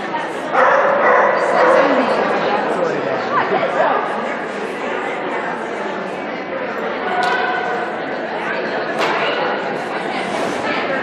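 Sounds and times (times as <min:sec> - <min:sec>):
dog barking: 0:00.6 - 0:01.9.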